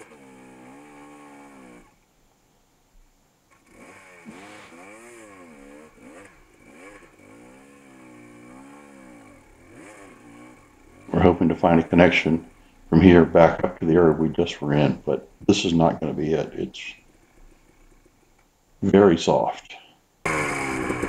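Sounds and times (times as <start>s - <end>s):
dirt bike engine revving: 0.0s - 2.0s, 3.5s - 18.2s, 20.2s - 21.0s.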